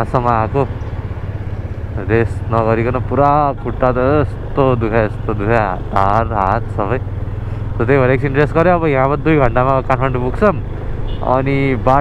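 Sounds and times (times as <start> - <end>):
motorcycle engine running: 0.0 - 11.8
person talking: 2.0 - 7.0, 11.2 - 12.0.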